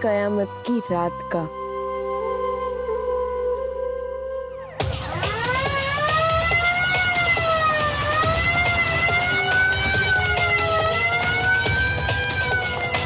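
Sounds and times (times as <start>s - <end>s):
police siren wailing: 0.9s - 13.0s.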